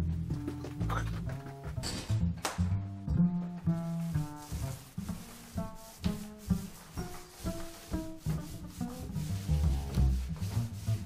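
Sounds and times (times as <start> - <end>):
jazz music: 0.0 - 11.0
paint roller rubbing on wood: 3.6 - 11.0.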